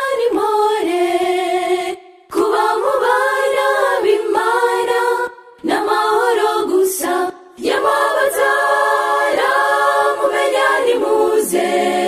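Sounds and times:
choir singing gospel in harmony: 0.0s - 12.0s.

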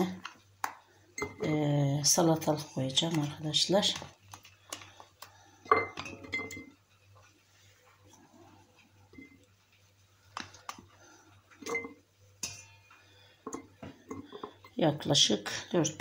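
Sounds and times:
glass clinking: 1.2s - 1.5s, 5.7s - 6.7s, 11.6s - 12.9s.

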